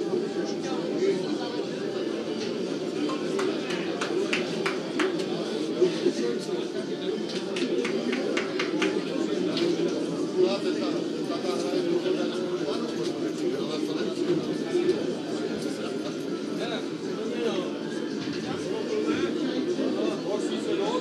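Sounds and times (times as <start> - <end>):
murmur of many voices: 0.0 - 21.0.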